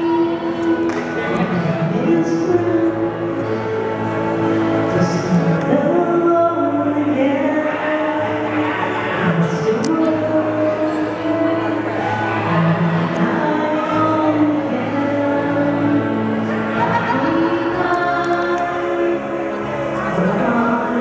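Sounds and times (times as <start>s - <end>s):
karaoke backing track: 0.0s - 21.0s
person singing: 0.0s - 21.0s.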